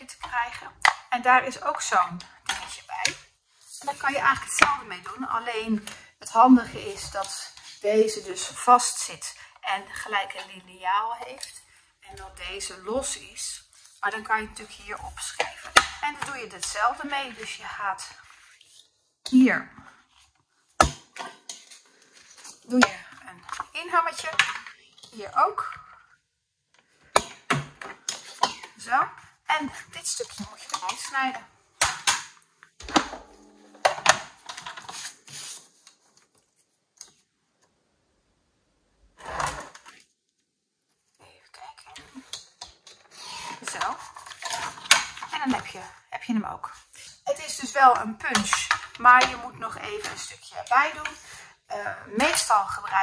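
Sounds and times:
card stock being handled: 34.4 - 36.7.

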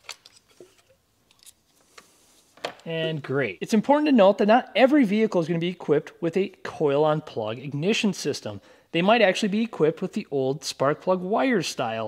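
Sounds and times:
man speaking: 2.8 - 12.0.

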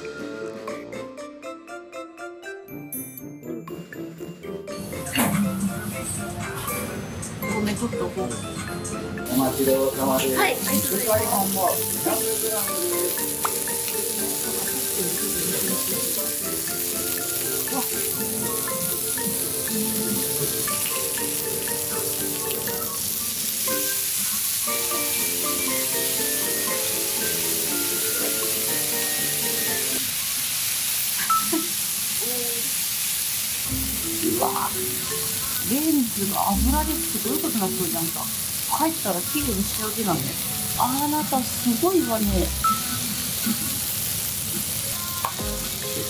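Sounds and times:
light background music: 0.0 - 30.2, 33.7 - 44.0, 44.6 - 46.0
meat sizzling on hot plate: 9.3 - 46.0.

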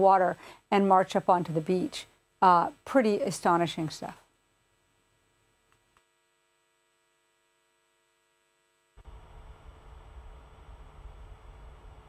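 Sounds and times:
faint electrical hum: 0.0 - 12.0
low rumbling noise: 9.0 - 12.0.

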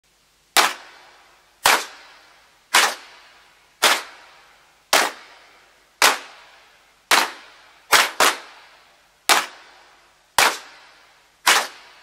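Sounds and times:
sharp percussive hits: 0.6 - 3.2, 10.4 - 12.0.

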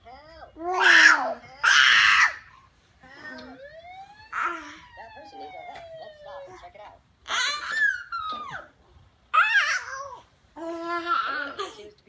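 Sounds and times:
baby squealing and shrieking: 0.6 - 2.5, 7.3 - 8.7, 9.3 - 11.6
baby wailing: 0.6 - 2.5, 7.2 - 8.7, 9.3 - 11.8.

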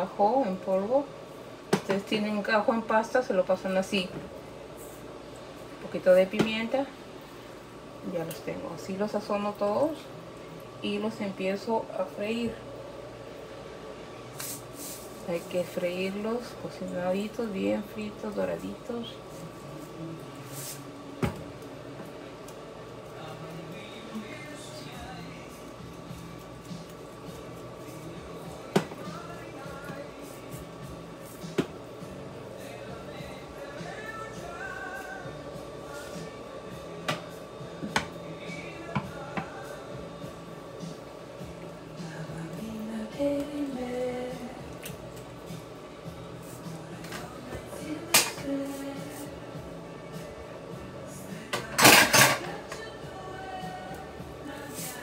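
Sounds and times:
steady hum: 0.0 - 55.0
background voices: 14.8 - 55.0
background music: 15.2 - 55.0.

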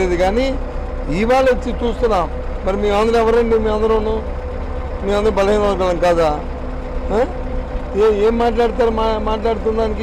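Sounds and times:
man talking: 0.0 - 4.3, 5.0 - 10.0
bus engine rumble: 0.0 - 10.0.

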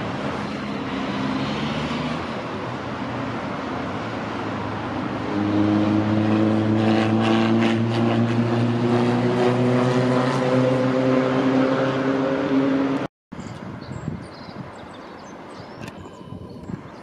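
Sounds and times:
engine drone of passing motor: 0.0 - 13.1.

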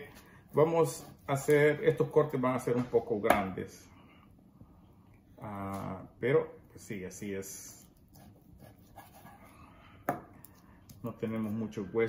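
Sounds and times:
knife cutting through meat: 7.8 - 9.5.

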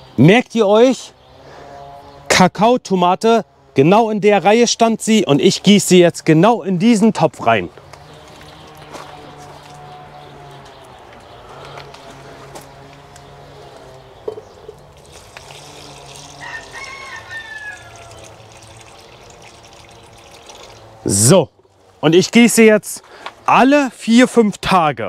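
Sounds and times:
water trickling from watering can: 14.8 - 21.0.

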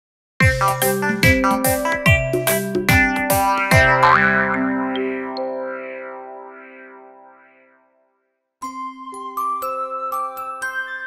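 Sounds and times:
rising boing swoop: 2.9 - 7.9.

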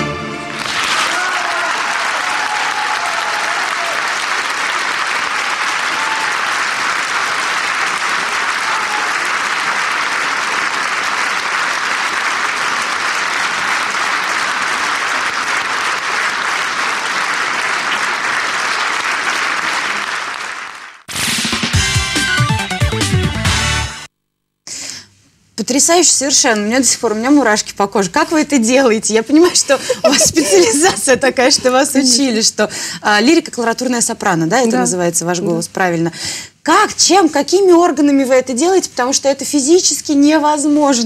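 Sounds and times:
audience applauding: 0.4 - 21.1, 29.8 - 31.0.

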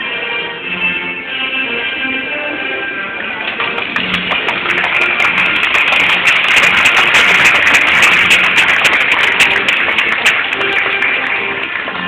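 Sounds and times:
background music: 0.0 - 12.0
audience clapping: 3.3 - 12.0.

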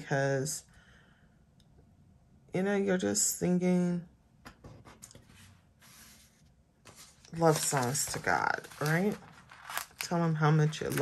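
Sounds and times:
faint rubbing on paper: 4.9 - 9.8.

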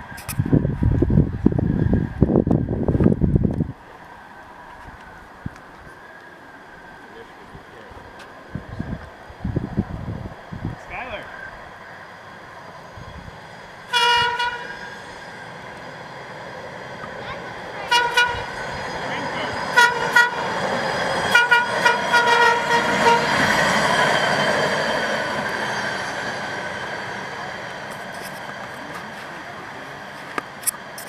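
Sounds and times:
truck running on rails: 11.6 - 31.0
truck horn honking: 13.9 - 14.9, 17.8 - 18.6, 19.7 - 20.6, 21.3 - 23.6.

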